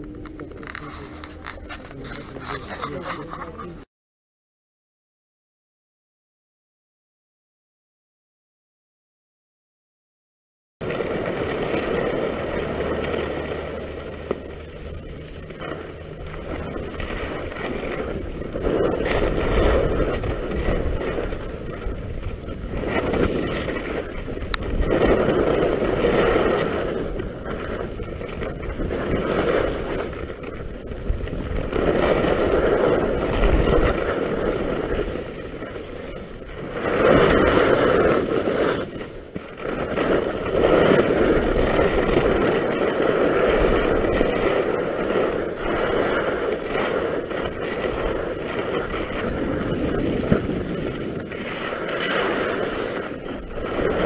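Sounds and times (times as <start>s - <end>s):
skis scraping on snow: 0.2s - 3.5s, 10.8s - 54.0s.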